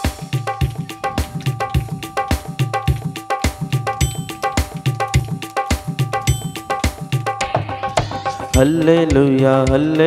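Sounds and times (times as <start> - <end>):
electronic keyboard playing: 1.6 - 7.4, 8.6 - 9.1
pulsing bass line: 4.0 - 4.8, 6.3 - 7.0, 8.6 - 9.0
cowbell-like ringing tone: 4.0 - 5.4, 6.2 - 7.4, 8.6 - 9.3.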